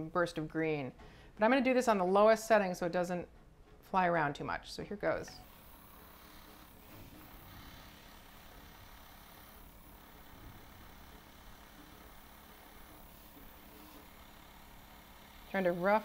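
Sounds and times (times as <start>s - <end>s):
airbrush hissing: 5.4s - 16.0s.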